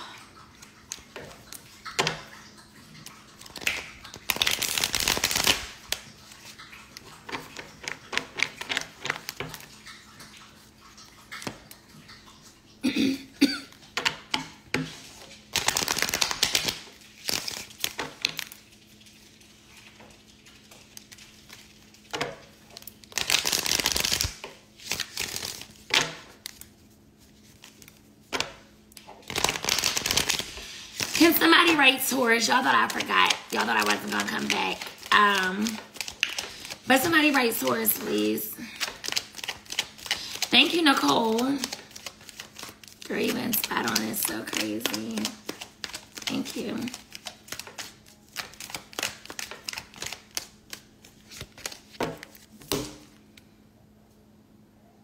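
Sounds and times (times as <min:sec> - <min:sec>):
cards riffle-shuffled: 0:03.4 - 0:06.6, 0:14.8 - 0:28.5, 0:29.2 - 0:53.0
cards tapping and clicking: 0:41.6 - 0:53.1.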